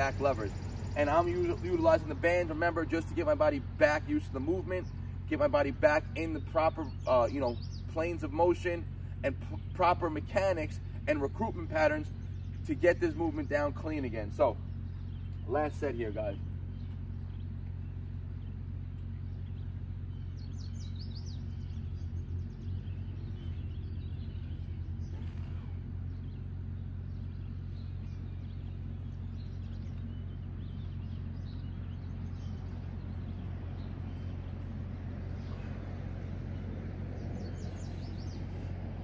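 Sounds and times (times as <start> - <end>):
birds chirping: 0.0 - 39.0
steady low hum: 0.0 - 39.0.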